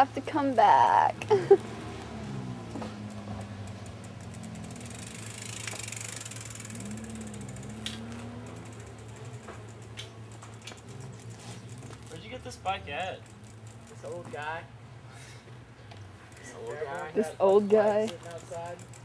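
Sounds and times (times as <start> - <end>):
bicycle freewheel ticking: 0.0 - 14.8, 16.0 - 19.0
low steady drone: 6.2 - 11.7.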